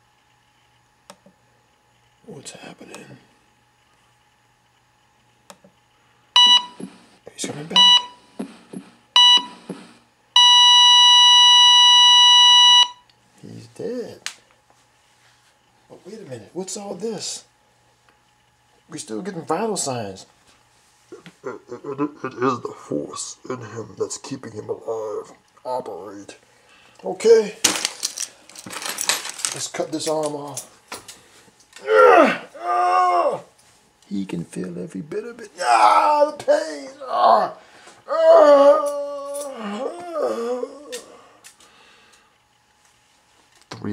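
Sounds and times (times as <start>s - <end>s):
heart monitor beep: 6.4s - 7.0s, 7.8s - 8.2s, 9.2s - 9.8s, 10.4s - 13.0s
heart monitor flatline tone: 6.4s - 7.0s, 7.7s - 8.2s, 8.8s - 9.8s, 10.4s - 13.0s
person crying out in pain: 31.8s - 33.5s, 35.6s - 41.2s.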